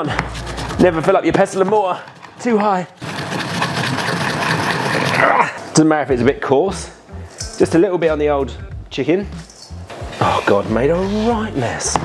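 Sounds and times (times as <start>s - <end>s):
pestle grinding seeds in mortar: 0.1s - 5.4s.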